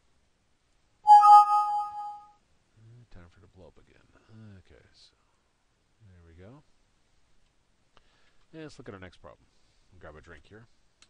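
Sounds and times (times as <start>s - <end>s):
bright alert chime ding: 1.1s - 2.2s.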